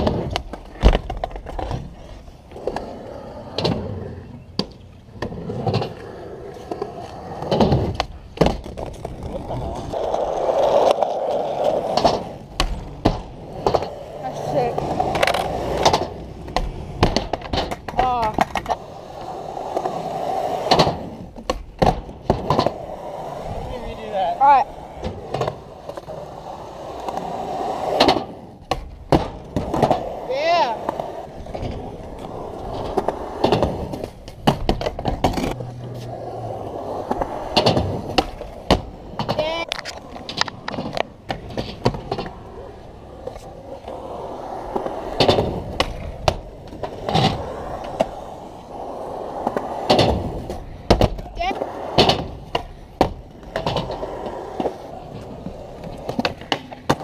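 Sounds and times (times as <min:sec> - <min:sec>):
skateboard popping and landing clacks: 0:00.0 - 0:57.0
skateboard wheels rolling on concrete: 0:00.0 - 0:57.0.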